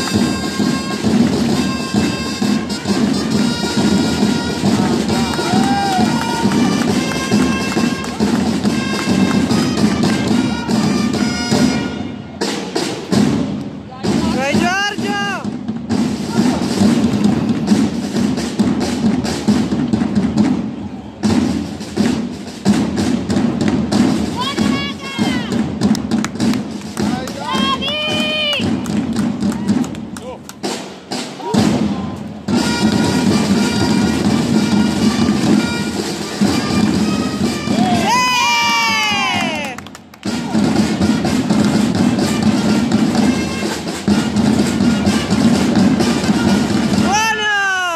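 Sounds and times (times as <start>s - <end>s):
long held brass tones: 0.0s - 12.4s
brass held notes: 0.0s - 12.5s, 31.5s - 38.2s, 40.4s - 47.0s
drums beating: 0.0s - 47.9s.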